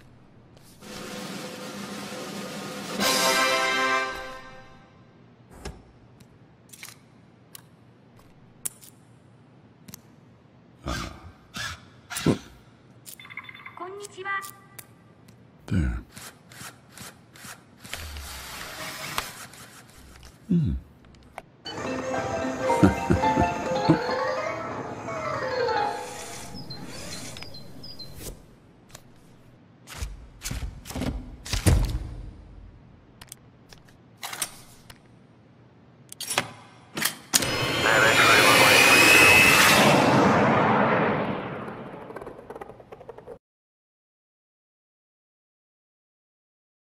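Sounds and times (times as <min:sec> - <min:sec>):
loud sustained rushing: 0:37.5 - 0:42.1
loud falling sweep: 0:38.5 - 0:42.8.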